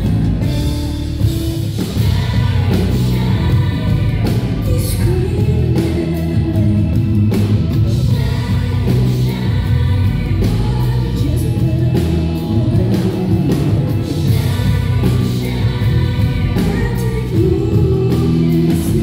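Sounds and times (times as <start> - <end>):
live band music: 0.0 - 19.0.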